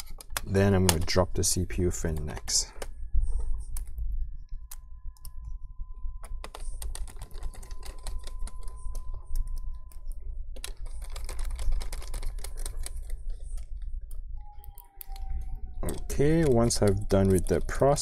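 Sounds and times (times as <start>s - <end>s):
plastic and metal clicks: 10.6s - 18.0s
faint high tone: 14.3s - 18.0s.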